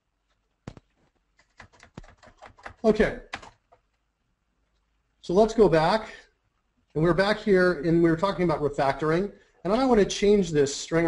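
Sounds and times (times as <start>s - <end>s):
computer keyboard taps: 0.7s - 3.8s.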